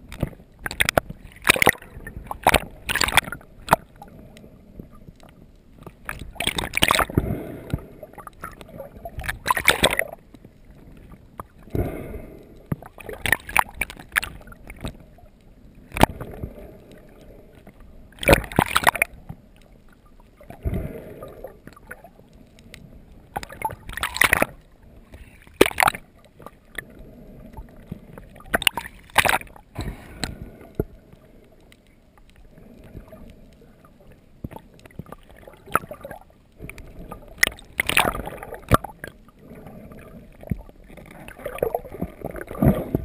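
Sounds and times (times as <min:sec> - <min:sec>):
small clicks and rustles: 0:00.0 - 0:11.8, 0:12.4 - 0:43.0
muffled underwater water noise: 0:00.0 - 0:43.0.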